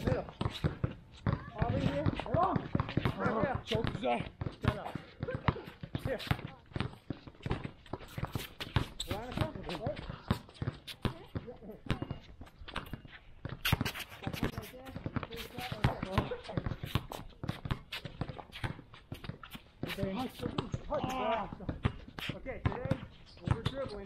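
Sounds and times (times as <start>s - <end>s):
basketballs bouncing: 0.0s - 24.0s.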